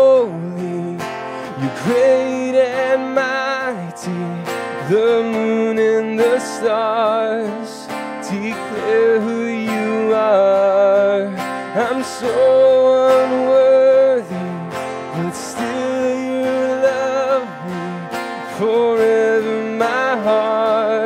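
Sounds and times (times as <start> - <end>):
acoustic guitar strumming: 0.0 - 21.0
man singing worship song: 0.0 - 21.0.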